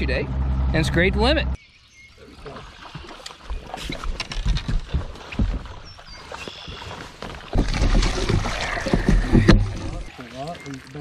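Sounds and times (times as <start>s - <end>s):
knocks and clatter on boat deck: 7.5s - 10.1s.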